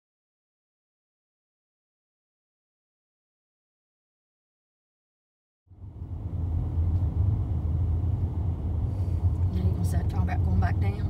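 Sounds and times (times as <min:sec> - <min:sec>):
car engine and tyres rumbling: 0:05.7 - 0:11.0.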